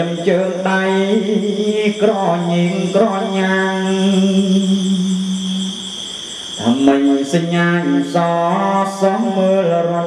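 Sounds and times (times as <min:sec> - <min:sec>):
high thin insect-like tone: 0:00.0 - 0:10.0
person chanting: 0:00.0 - 0:10.0.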